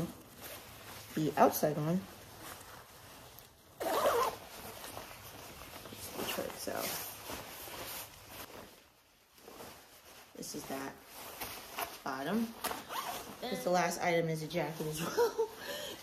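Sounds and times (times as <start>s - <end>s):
fabric rustling: 0.0s - 16.0s
jacket zipper: 3.8s - 4.8s, 11.8s - 13.6s.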